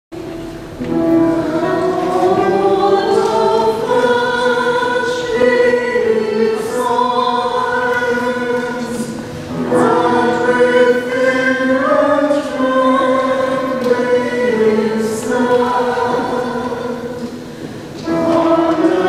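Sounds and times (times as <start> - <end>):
church choir singing: 0.8 - 19.0.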